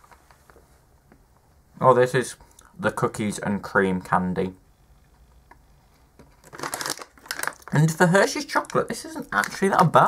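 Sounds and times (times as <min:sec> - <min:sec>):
plastic bag crinkling: 0:06.2 - 0:10.0.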